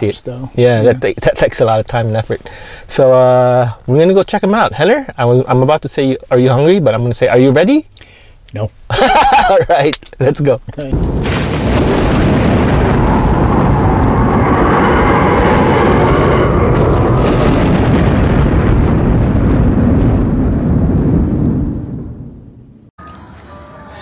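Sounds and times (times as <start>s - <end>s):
thunder rumble sound effect: 10.9s - 22.9s.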